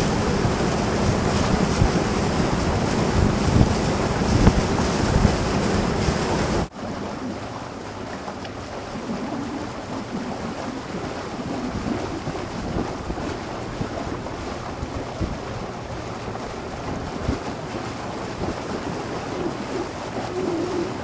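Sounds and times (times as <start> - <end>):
water sounds: 0.0 - 21.0
wind buffeting microphone: 0.0 - 21.0.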